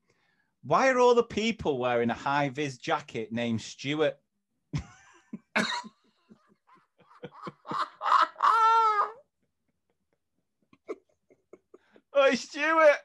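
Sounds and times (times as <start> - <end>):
men laughing: 4.8 - 12.1.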